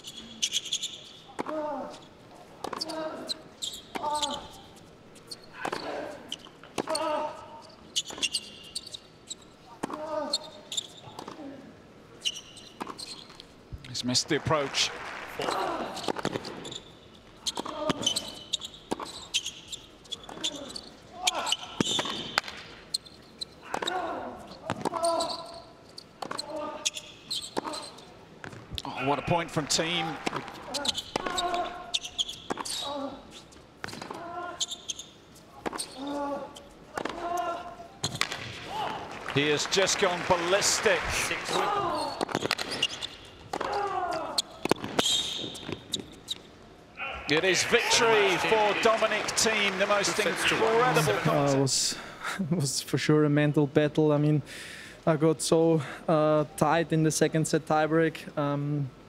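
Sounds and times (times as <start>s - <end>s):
sneaker squeaks on court: 0.0s - 1.3s, 2.6s - 11.3s, 12.2s - 13.5s, 16.0s - 23.6s, 24.5s - 28.6s, 30.7s - 36.8s, 41.5s - 43.3s, 44.4s - 46.5s
ball bounces: 41.5s - 43.8s
players grunting: 47.0s - 51.7s.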